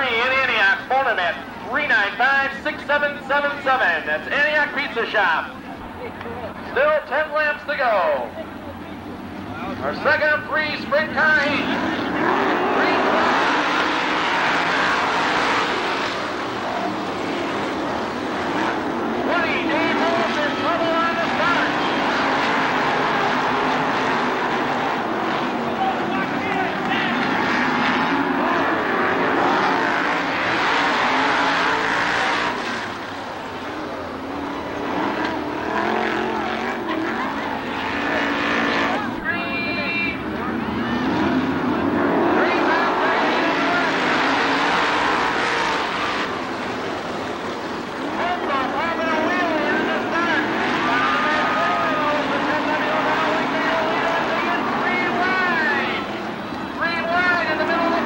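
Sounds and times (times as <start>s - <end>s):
race car engines roaring: 0.0s - 58.0s.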